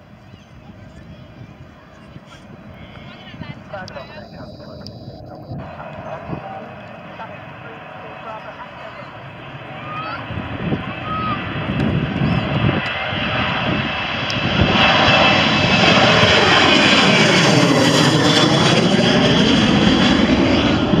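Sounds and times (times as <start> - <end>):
jet airliner taking off overhead: 0.0 - 21.0.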